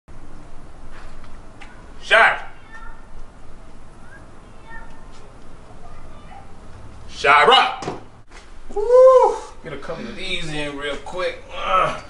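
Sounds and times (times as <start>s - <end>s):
faint scattered sounds: 0.6s - 7.1s.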